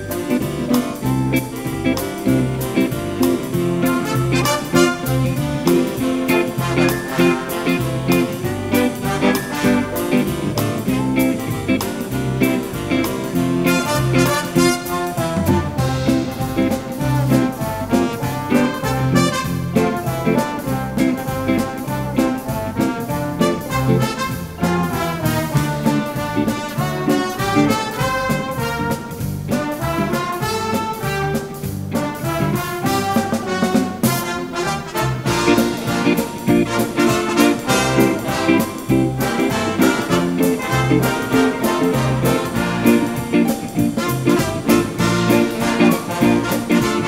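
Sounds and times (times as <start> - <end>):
instrumental dance-band music: 0.0 - 47.0.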